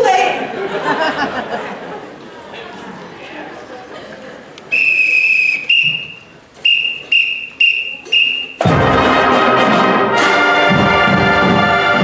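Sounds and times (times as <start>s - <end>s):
whistle blasts: 4.7s - 8.7s
brass band playing: 4.8s - 12.0s.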